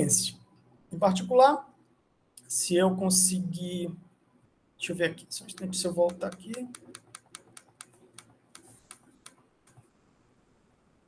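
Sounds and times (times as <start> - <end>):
computer mouse clicks: 5.5 - 9.9.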